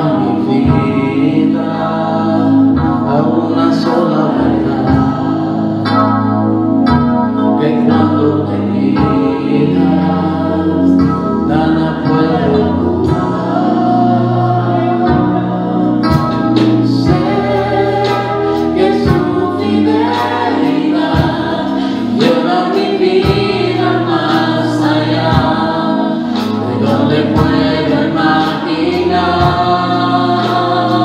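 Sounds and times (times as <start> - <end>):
women singing worship song: 0.0 - 6.1, 7.6 - 31.0
instrumental accompaniment: 0.0 - 31.0
steady beat: 11.0 - 31.0.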